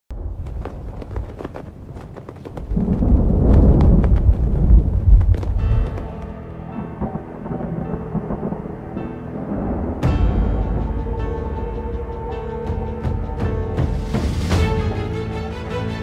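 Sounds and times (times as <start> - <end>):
deep thunder rumble: 0.2 - 11.3.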